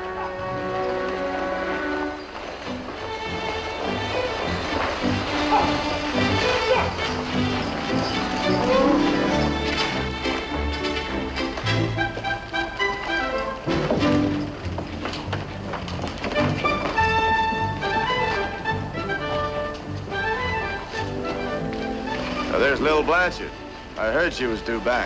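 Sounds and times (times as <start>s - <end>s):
background music sustained notes: 0.0s - 25.0s
man speaking: 22.5s - 25.0s.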